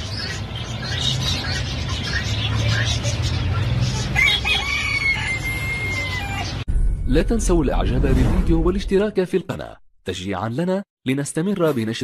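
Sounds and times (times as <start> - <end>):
rooster crowing: 4.2 - 6.6.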